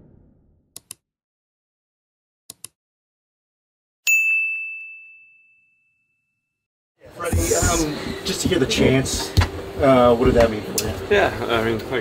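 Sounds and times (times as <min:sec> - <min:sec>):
notification bell ding: 0:04.1 - 0:06.1.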